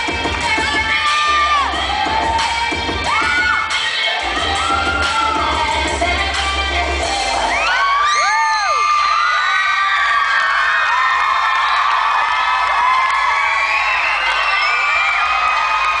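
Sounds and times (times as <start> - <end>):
children cheering and screaming: 0.6 - 5.9, 7.2 - 16.0.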